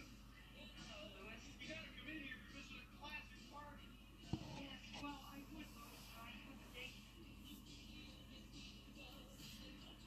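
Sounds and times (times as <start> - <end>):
background music: 0.0 - 10.0
faint background speech: 0.0 - 10.0.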